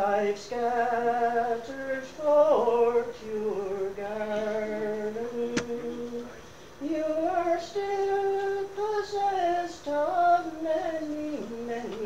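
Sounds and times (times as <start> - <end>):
solo voice singing: 0.0 - 12.0.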